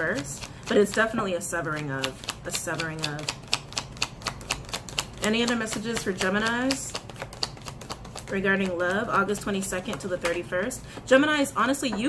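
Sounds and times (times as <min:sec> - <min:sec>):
cards being shuffled by hand: 0:00.0 - 0:11.1.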